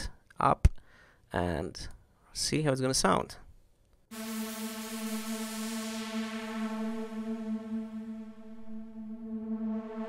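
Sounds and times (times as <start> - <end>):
synth pad note with filter sweep: 4.1 - 10.0.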